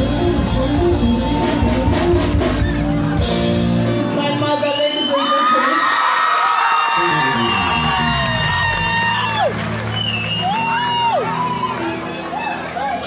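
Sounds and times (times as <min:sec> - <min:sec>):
low bass line: 0:00.0 - 0:04.1
live band music: 0:00.0 - 0:05.2, 0:07.0 - 0:13.0
crowd cheering: 0:04.7 - 0:13.0.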